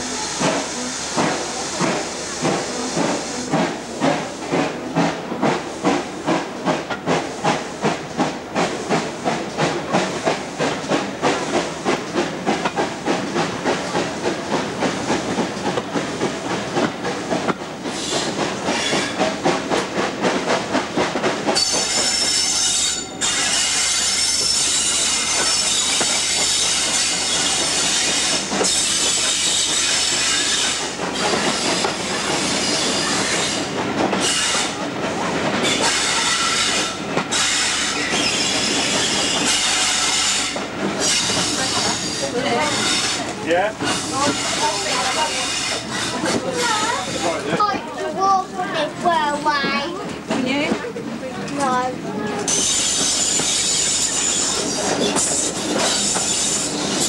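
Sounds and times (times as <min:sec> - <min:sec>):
steam train chugging: 0:00.0 - 0:57.0.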